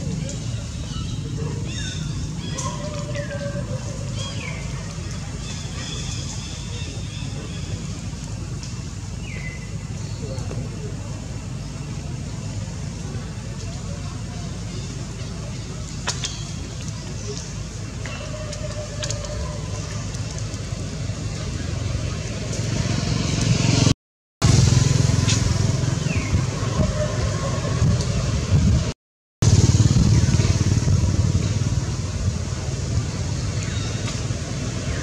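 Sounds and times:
steady low rumble: 24.4s - 35.0s.

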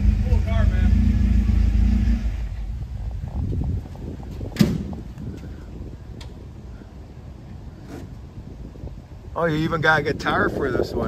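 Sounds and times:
low outdoor rumble: 0.0s - 11.0s
sharp knock: 4.6s - 4.9s.

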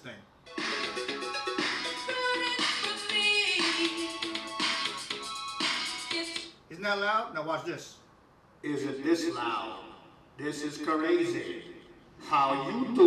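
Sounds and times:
music through small speaker: 0.4s - 6.6s, 11.1s - 13.0s.

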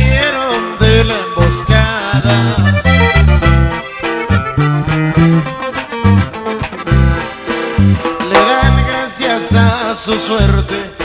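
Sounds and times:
accordion melody: 0.0s - 11.0s
deep bass notes: 0.0s - 11.0s.

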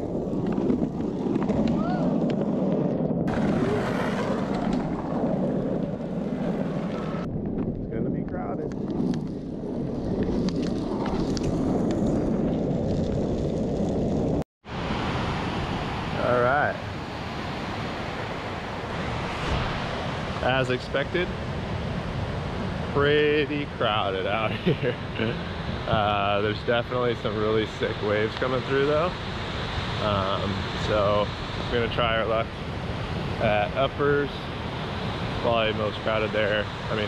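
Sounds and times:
wind buffeting microphone: 0.0s - 37.0s
ocean surf breaking: 3.3s - 7.3s, 14.7s - 37.0s.

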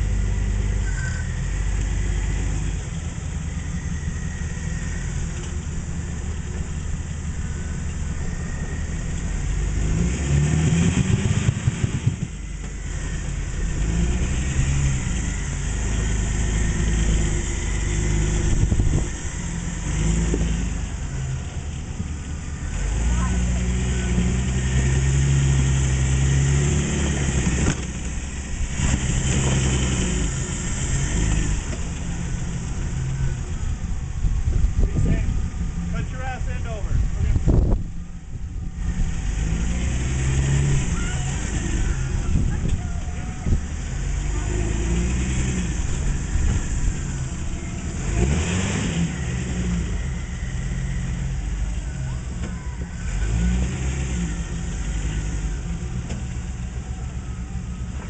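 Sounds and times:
buggy engine revving: 0.0s - 58.0s.

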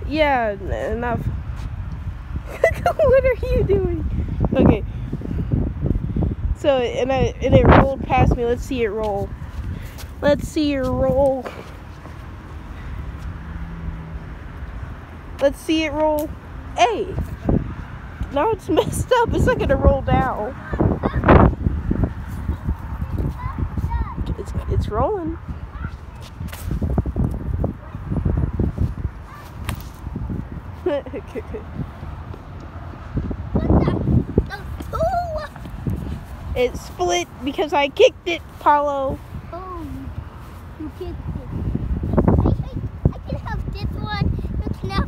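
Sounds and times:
wind buffeting microphone: 0.0s - 45.0s
child's voice: 20.2s - 21.5s, 22.9s - 24.7s, 25.6s - 26.3s, 29.2s - 29.6s, 33.5s - 35.8s, 39.5s - 40.2s, 40.8s - 45.0s
sharp clicks and scuffs: 25.9s - 27.4s, 28.8s - 30.1s, 34.4s - 36.4s.

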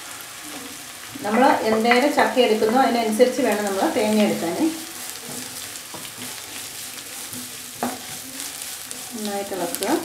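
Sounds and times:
light frying sizzle: 0.0s - 10.0s
wooden spatula scraping wok: 1.2s - 10.0s.

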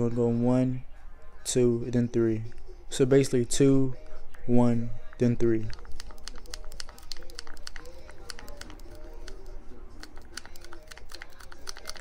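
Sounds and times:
plastic ampoule crinkling and clicking: 5.6s - 12.0s.

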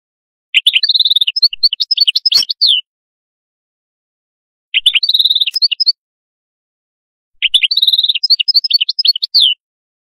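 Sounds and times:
goldfinch twittering song: 0.6s - 2.8s, 4.8s - 6.0s, 7.4s - 9.6s
sharp click: 2.3s - 2.6s.

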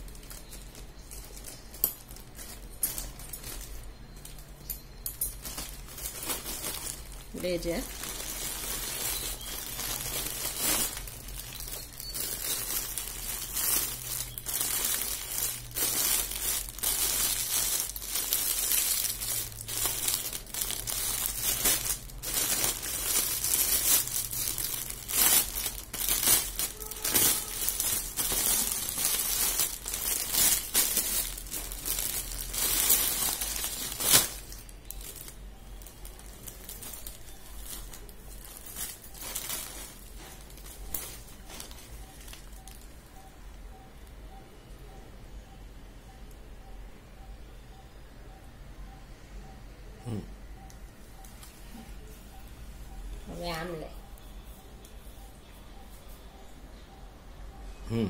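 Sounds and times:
plastic packaging crinkling: 0.0s - 43.2s.

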